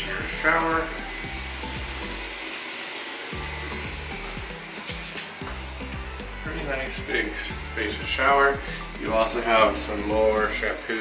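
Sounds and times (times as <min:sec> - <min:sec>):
music with bass and beat: 0:00.0 - 0:02.4, 0:03.4 - 0:11.0.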